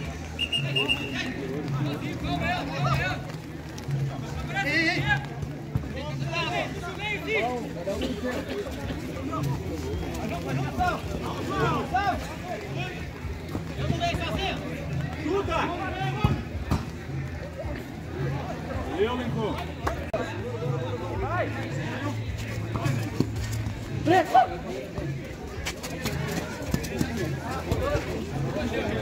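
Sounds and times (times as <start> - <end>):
players calling and shouting: 0.0 - 29.0.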